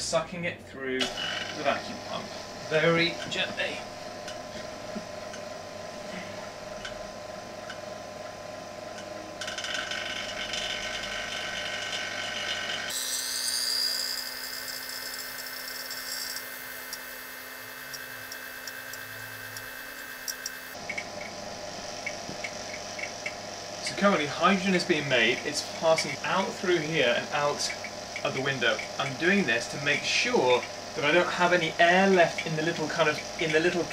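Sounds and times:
vacuum pump humming: 1.0 - 33.9.

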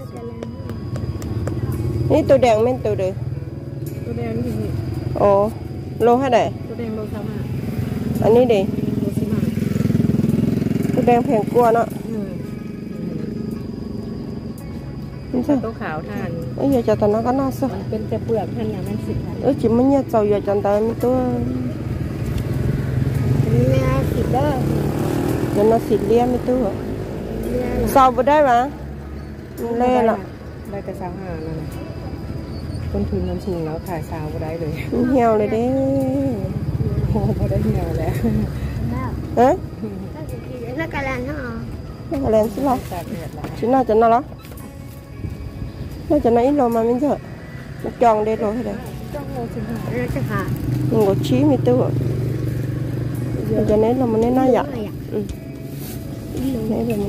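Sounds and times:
vehicle engine running: 0.0 - 57.0
voices talking: 0.0 - 57.0
engine idling hum: 27.9 - 41.1.

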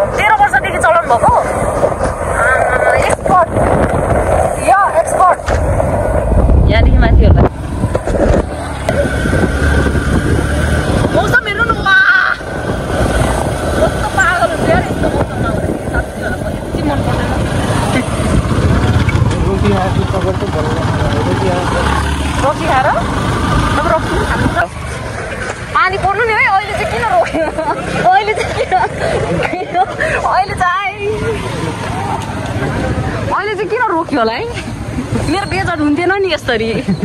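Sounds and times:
wind rushing on microphone: 0.0 - 21.8, 22.7 - 27.6
motorcycle running: 0.0 - 37.0
voices calling out: 7.4 - 37.0.

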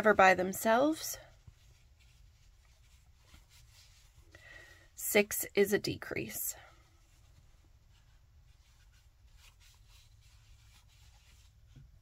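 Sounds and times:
crochet hook rustling yarn: 0.0 - 12.0.

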